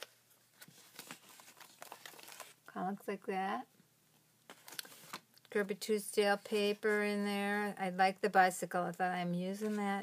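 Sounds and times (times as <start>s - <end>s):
paper pages rustling: 0.0s - 2.7s, 4.5s - 5.3s.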